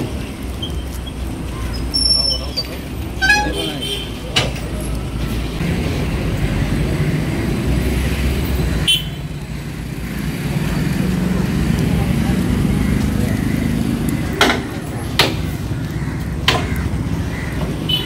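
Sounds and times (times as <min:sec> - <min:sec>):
idling vehicle engines: 0:00.0 - 0:18.0
car horn toot: 0:03.2 - 0:04.2, 0:08.9 - 0:09.2.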